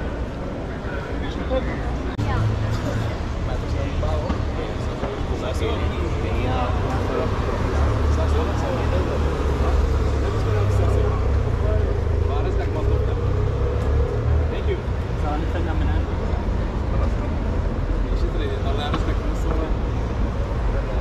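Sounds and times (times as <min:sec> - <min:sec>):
passers-by talking: 0:00.0 - 0:21.0
road traffic rumble: 0:00.0 - 0:21.0.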